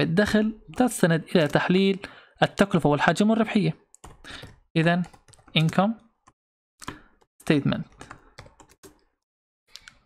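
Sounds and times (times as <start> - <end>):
keyboard typing: 0.5 - 1.9, 4.0 - 10.0.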